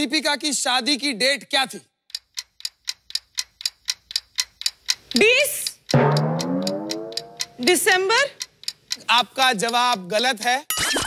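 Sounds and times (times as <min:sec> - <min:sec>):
countdown timer ticking: 0:03.4 - 0:10.2.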